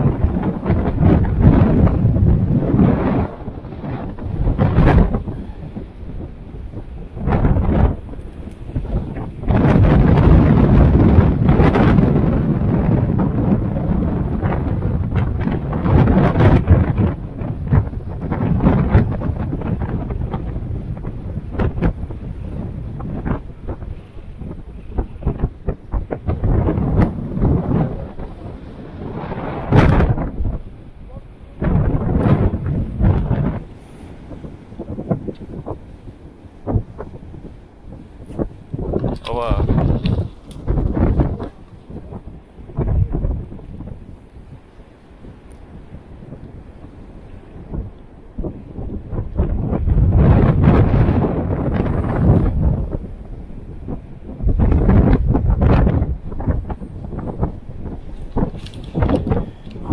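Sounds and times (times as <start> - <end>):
heavy surf breaking on rocks: 0.0 - 59.9
wind buffeting microphone: 0.0 - 59.9.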